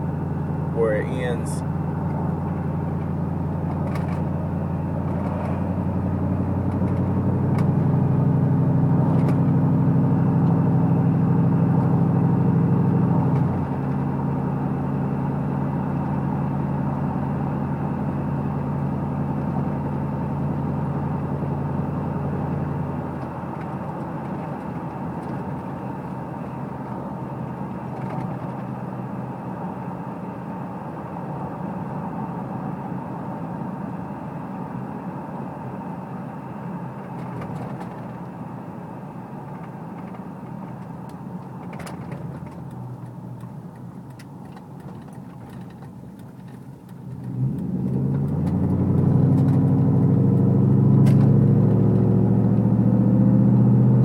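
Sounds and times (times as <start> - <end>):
road noise inside cab: 0.0 - 54.0
truck engine cruising: 0.0 - 54.0.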